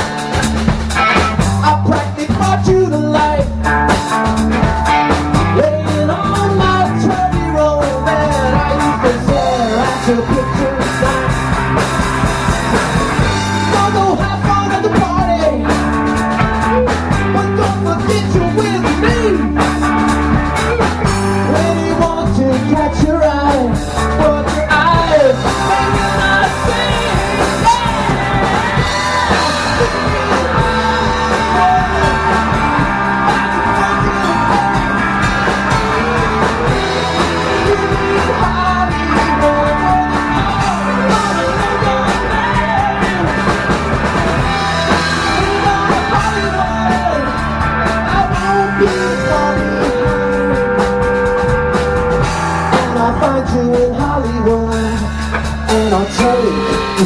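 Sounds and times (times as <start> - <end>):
drum kit with crashing cymbals: 0.0 - 22.7, 23.5 - 57.0
bass guitar: 0.0 - 57.0
electric guitars: 0.0 - 57.0
man singing: 1.0 - 57.0.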